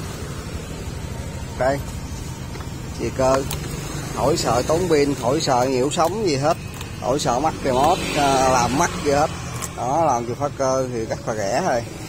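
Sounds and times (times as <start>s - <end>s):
scooter engine idling: 0.0s - 12.0s.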